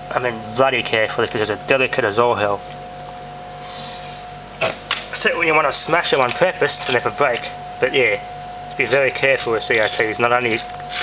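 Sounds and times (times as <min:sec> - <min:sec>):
air cooler humming: 0:00.0 - 0:11.0.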